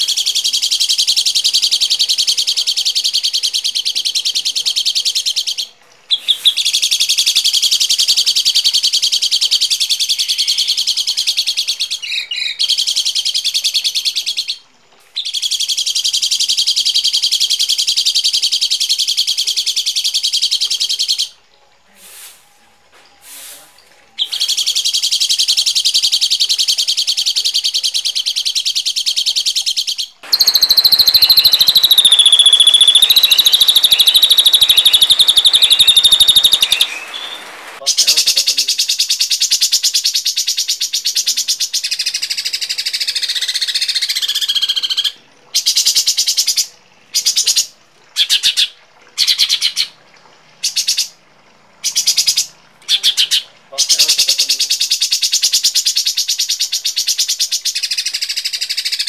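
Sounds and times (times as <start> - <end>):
bird high whistle call: 30.2 - 37.8
songbird buzzing trills: 30.2 - 37.8.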